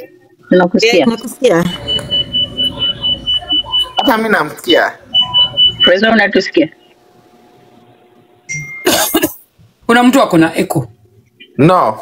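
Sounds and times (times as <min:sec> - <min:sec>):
high-pitched electronic beeps: 0:00.8 - 0:04.3, 0:05.1 - 0:07.0, 0:08.5 - 0:08.9.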